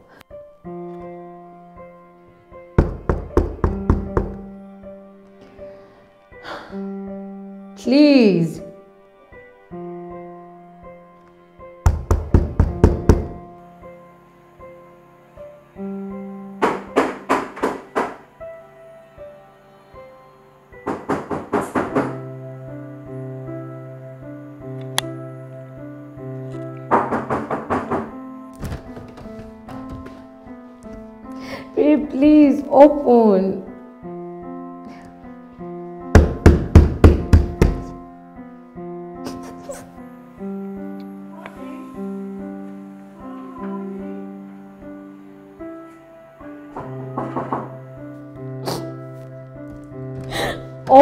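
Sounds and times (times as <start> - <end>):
soft piano music: 0.0 - 51.0
fist knocking on door: 2.8 - 4.5, 11.8 - 13.4, 16.6 - 18.2, 20.8 - 22.2, 26.9 - 30.2, 36.1 - 37.9, 46.8 - 47.7.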